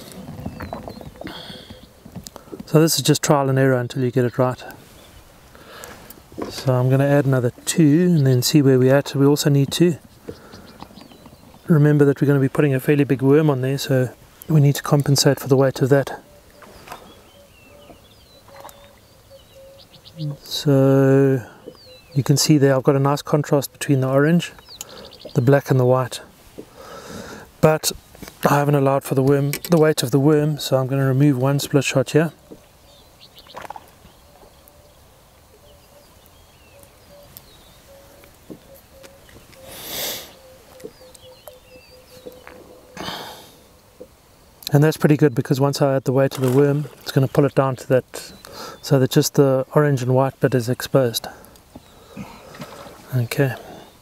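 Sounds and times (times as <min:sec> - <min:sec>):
open-air ambience: 0:00.0 - 0:54.0
faint bird chirps: 0:15.7 - 0:22.5, 0:23.6 - 0:25.8, 0:32.2 - 0:49.6, 0:50.3 - 0:54.0
high bird chirps: 0:16.2 - 0:20.4, 0:32.5 - 0:43.1.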